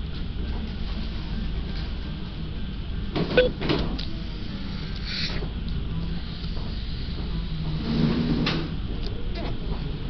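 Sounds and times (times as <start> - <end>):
low rumble of cafe room noise: 0.0 - 10.0
faint indistinct voices: 8.8 - 10.0.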